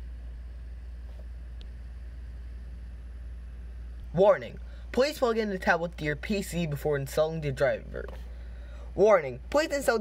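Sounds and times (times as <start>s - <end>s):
low hum: 0.0s - 9.9s.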